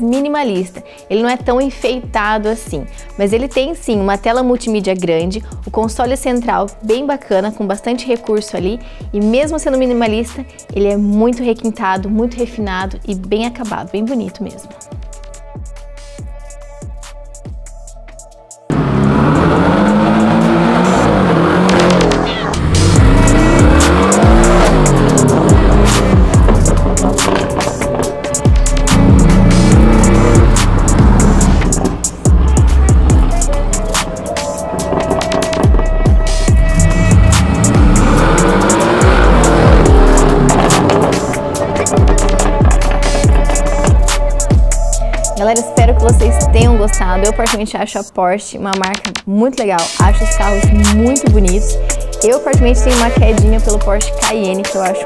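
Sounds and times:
music with heavy bass beat: 14.8 - 47.6, 49.8 - 55.0
car engine revving hard: 18.7 - 45.0.

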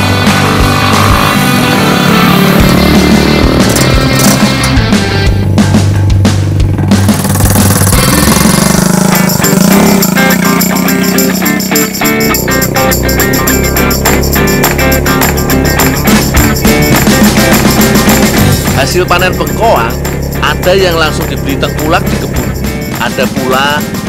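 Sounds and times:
rock music with guitar: 0.0 - 24.0.

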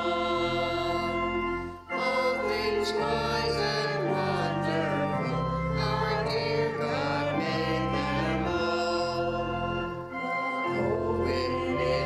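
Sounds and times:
organ accompaniment: 0.0 - 12.0
small vocal group singing a hymn: 0.0 - 12.0.

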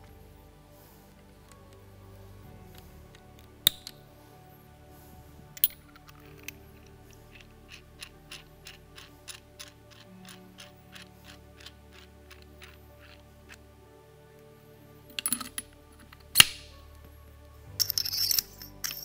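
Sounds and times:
small metal parts clinking: 5.6 - 13.6, 15.1 - 16.5, 17.8 - 19.0.

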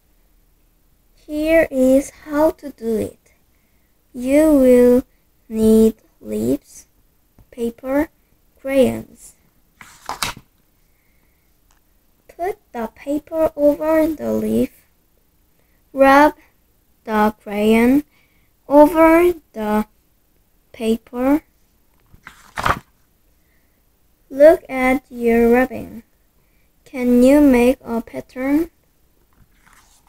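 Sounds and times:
paper page turning: 9.8 - 10.5, 22.1 - 22.9, 29.4 - 30.0.

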